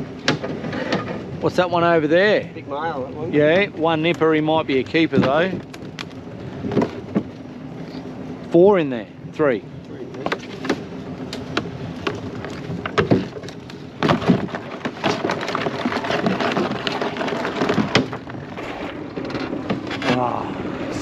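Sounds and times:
steady noisy background: 0.0 - 21.0.

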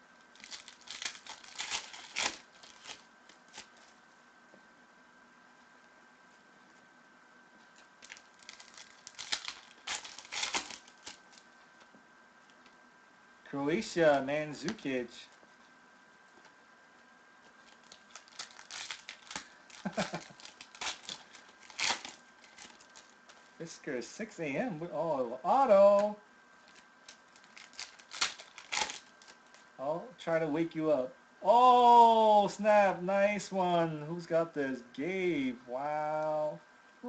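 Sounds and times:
foil pack crinkling and tearing: 0.3 - 3.9, 7.8 - 11.5, 17.6 - 23.5, 26.0 - 29.7
trading cards handled: 0.4 - 4.0, 7.7 - 11.9, 17.4 - 23.6, 26.7 - 29.7.

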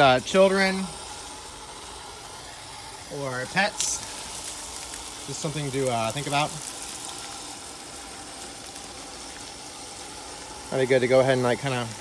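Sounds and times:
hose spraying water on wall: 0.0 - 12.0.

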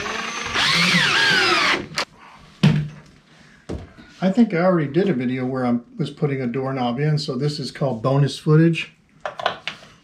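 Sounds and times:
cordless drill motor whine: 0.0 - 2.0.

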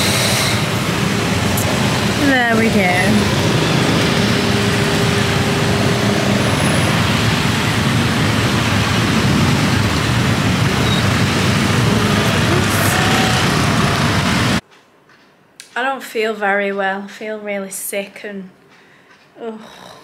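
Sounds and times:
scooter engine hum: 0.0 - 14.6
traffic and wind rush: 0.0 - 14.6.

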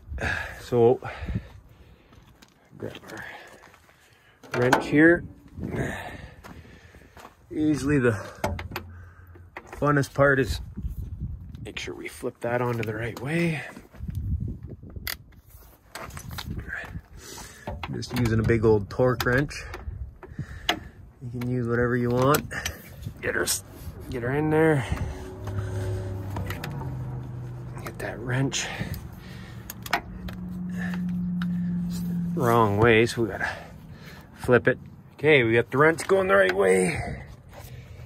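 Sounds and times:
steady low hum: 22.5 - 35.2
sharp metallic clicks: 28.9 - 31.5.

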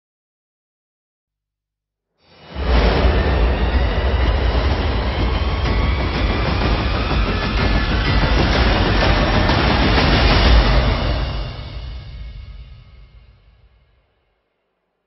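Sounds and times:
fire roaring: 2.4 - 12.1.

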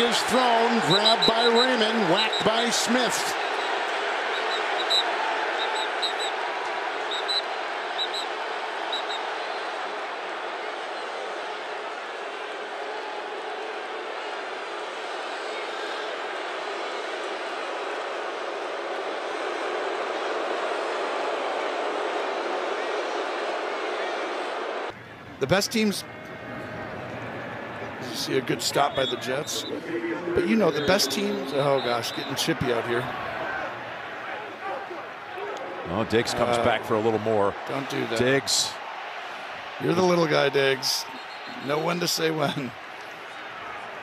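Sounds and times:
stadium crowd noise: 0.0 - 44.0.

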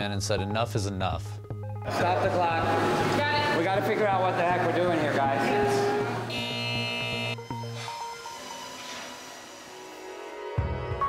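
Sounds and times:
harsh electronic buzzer: 6.3 - 7.4.

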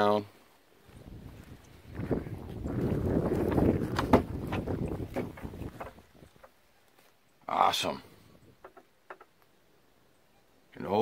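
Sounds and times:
wind rumbling on microphone: 0.8 - 6.5.

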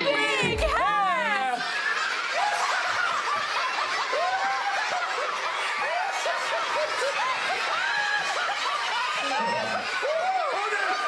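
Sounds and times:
children laughing: 0.0 - 11.0.

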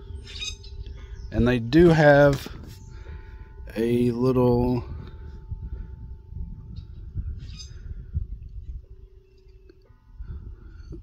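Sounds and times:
faint steady tones: 0.0 - 11.0
wind on microphone: 0.0 - 11.0.

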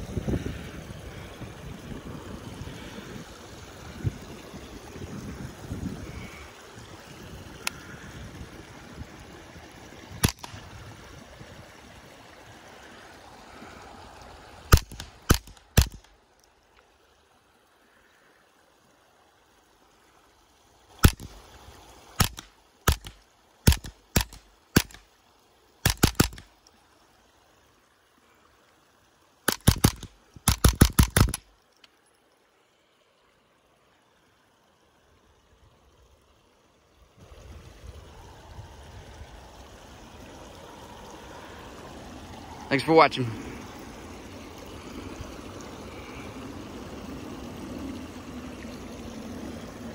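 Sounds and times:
suppressed rifle shots: 14.7 - 16.0, 22.2 - 25.0, 25.8 - 26.4, 29.5 - 31.4.

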